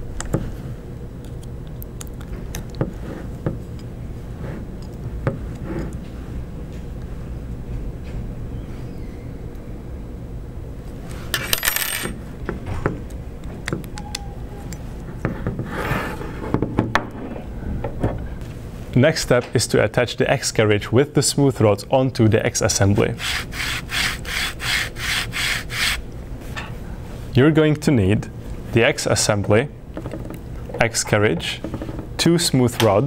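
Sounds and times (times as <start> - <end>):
steady low hum: 0.0 - 33.0
loud handling noises: 11.0 - 13.8.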